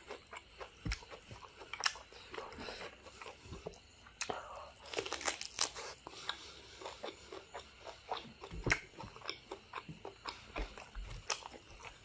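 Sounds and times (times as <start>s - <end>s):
person chewing food: 0.0s - 12.0s.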